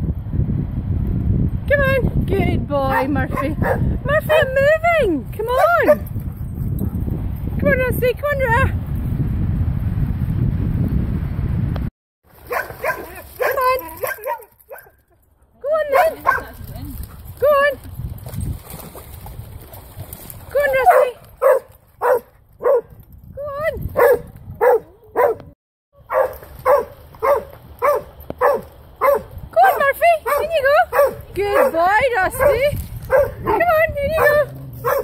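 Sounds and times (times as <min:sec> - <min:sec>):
dog barking: 0:02.9 - 0:04.5, 0:05.6 - 0:06.0, 0:12.5 - 0:15.0, 0:15.9 - 0:16.5, 0:20.9 - 0:22.9, 0:24.0 - 0:35.0
dog yelping: 0:32.4 - 0:35.0.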